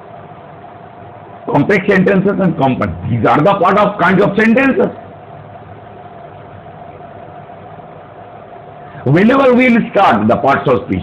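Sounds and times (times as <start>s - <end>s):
faint steady whine: 0.0s - 11.0s
mechanical background hum: 0.0s - 11.0s.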